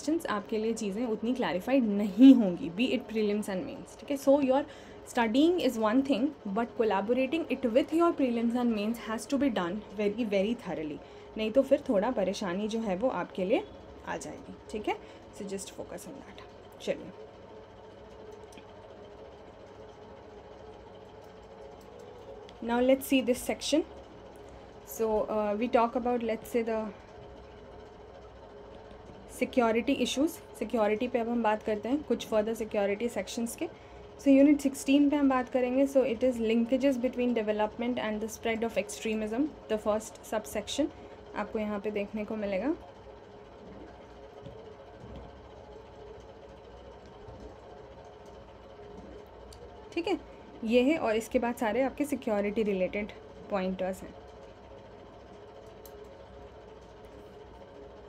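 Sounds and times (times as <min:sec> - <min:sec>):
low machine-like hum: 0:00.0 - 0:58.0.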